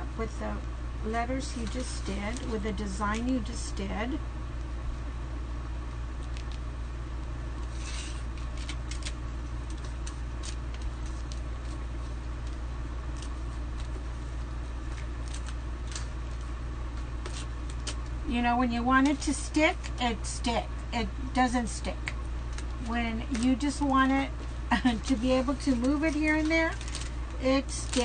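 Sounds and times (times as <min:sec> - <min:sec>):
steady low hum: 0:00.0 - 0:28.0
plastic stencil rustling: 0:07.6 - 0:18.1, 0:22.4 - 0:28.0.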